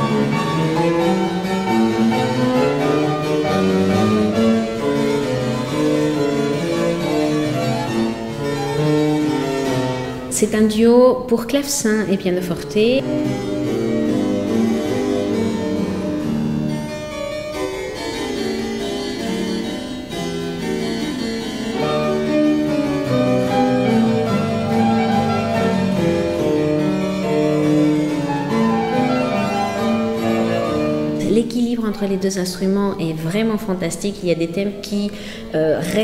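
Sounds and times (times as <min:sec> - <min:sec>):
fortepiano playing: 0:00.0 - 0:36.0
harpsichord playing: 0:00.0 - 0:36.0.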